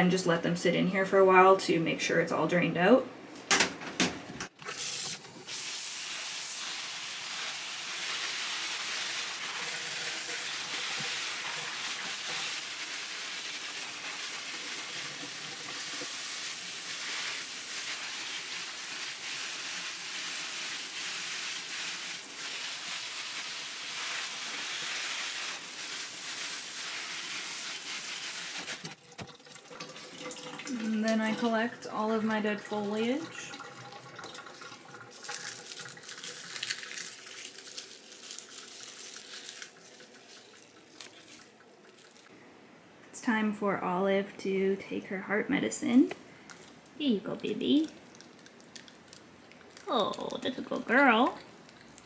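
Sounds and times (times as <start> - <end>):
shower spray hissing on plants: 4.8 - 28.9, 35.2 - 41.4.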